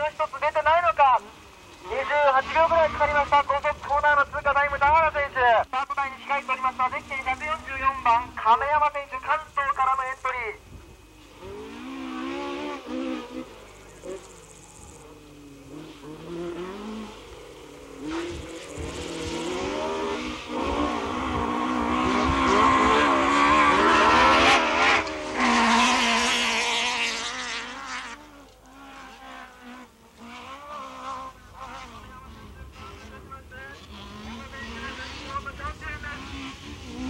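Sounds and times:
car engine revving: 0.0s - 37.0s.

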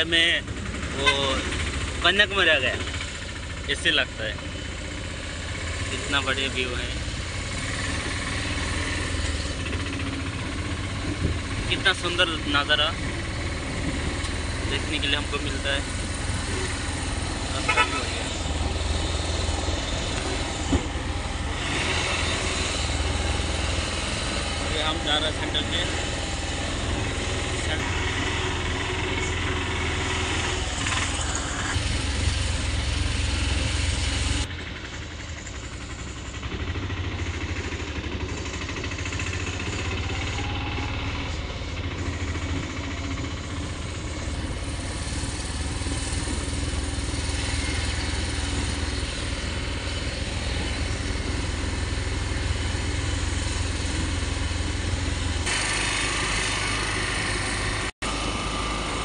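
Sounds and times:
auto-rickshaw engine running: 0.0s - 59.0s
road and wind noise: 0.0s - 59.0s.

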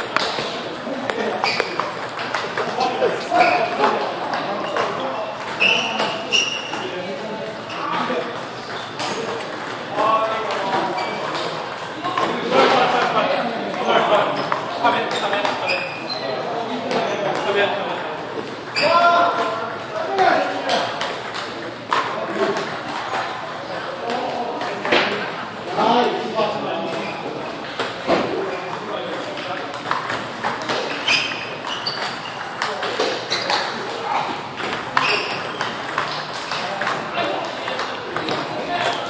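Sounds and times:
table tennis balls clicking: 0.0s - 15.9s, 16.9s - 26.2s, 26.9s - 39.0s
people talking: 0.0s - 39.0s.

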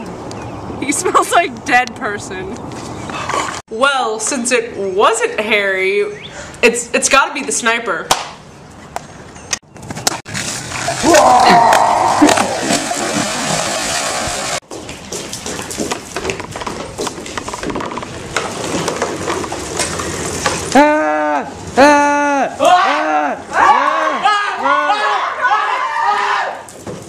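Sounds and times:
bicycle tyres rolling on wooden boards: 10.0s - 21.8s, 26.7s - 27.0s
person shouting long calls: 11.0s - 12.6s, 20.7s - 26.5s.

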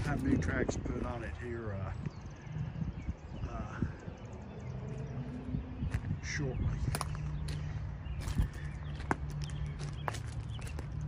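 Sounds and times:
footsteps crunching on gravel: 4.9s - 11.0s.

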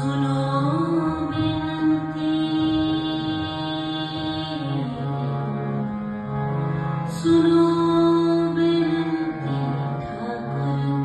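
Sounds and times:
woman singing a hymn: 0.0s - 5.4s, 7.1s - 11.0s
harmonium chords: 0.0s - 11.0s.

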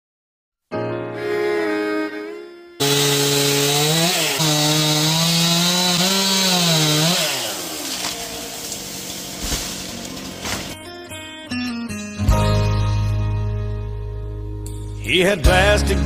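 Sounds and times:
chainsaw cutting wood: 2.8s - 10.8s.

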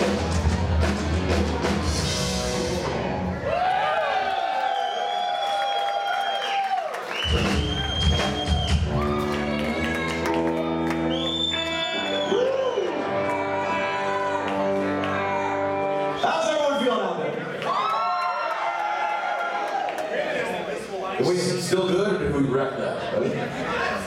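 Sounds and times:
rock band held notes: 0.0s - 3.5s, 7.3s - 16.5s
crowd cheering: 0.0s - 21.4s.

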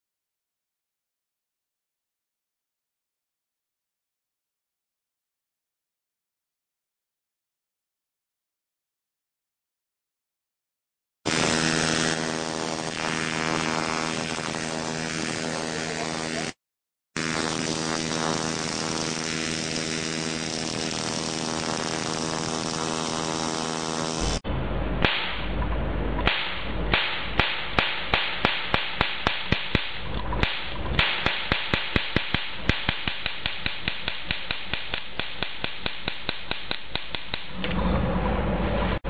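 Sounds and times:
sharp electric cracks: 11.3s - 16.6s, 17.2s - 24.4s, 25.0s - 25.6s, 26.2s - 37.5s
spark plug buzzing: 11.3s - 16.6s, 17.2s - 24.4s, 26.3s - 37.5s.

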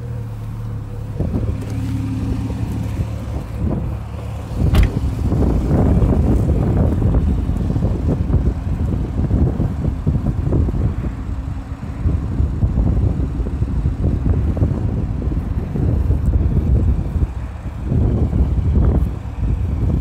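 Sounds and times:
car engine idling: 0.0s - 20.0s
wind buffeting microphone: 0.6s - 20.0s.

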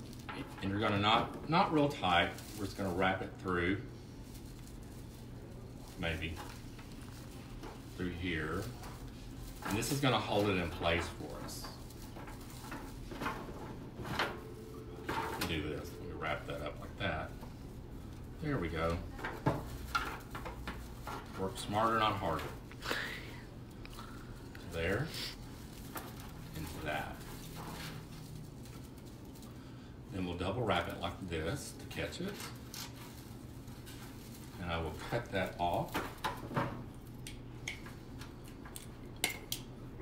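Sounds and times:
steady low hum: 0.0s - 40.0s
wire and vine clicking and crackling: 0.0s - 40.0s.

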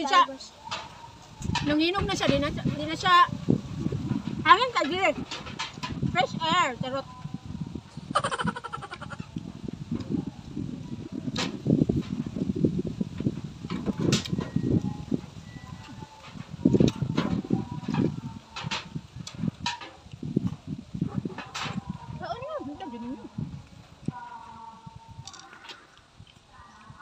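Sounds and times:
chewing and crunching: 22.8s - 27.0s.

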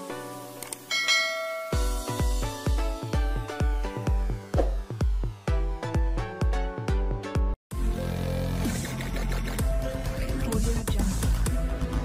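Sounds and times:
background music: 0.0s - 12.0s
notification bell ding: 0.9s - 2.3s
electronic dance beat: 1.7s - 7.6s.

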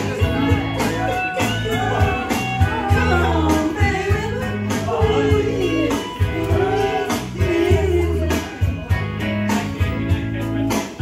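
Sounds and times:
backing track over speakers: 0.0s - 11.0s.

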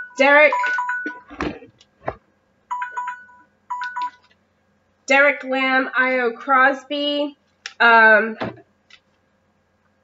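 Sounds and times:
electronic beeping ringtone: 0.0s - 1.3s, 2.7s - 4.2s.

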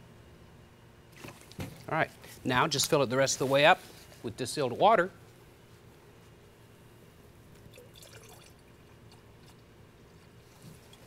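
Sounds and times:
water trickling into jug: 7.6s - 8.9s.

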